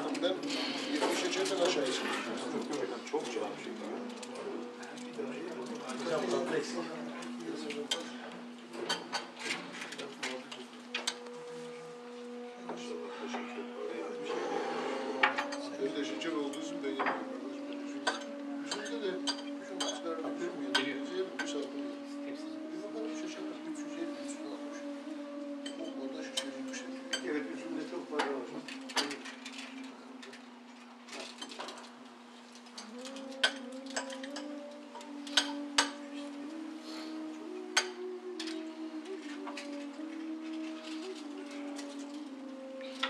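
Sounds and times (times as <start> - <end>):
low voices: 0.0 - 43.0
spoons clinking on plates: 32.8 - 36.0.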